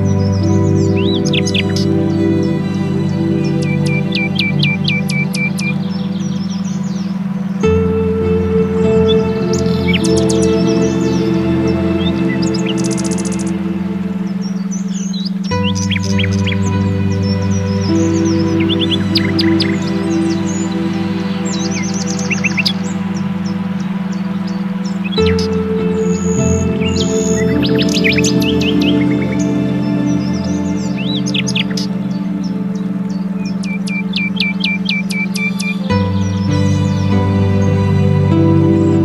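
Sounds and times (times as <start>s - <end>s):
ambient music sustained chords: 0.0s - 39.0s
birds chirping and trilling: 0.0s - 39.0s
steady low tone: 0.0s - 39.0s.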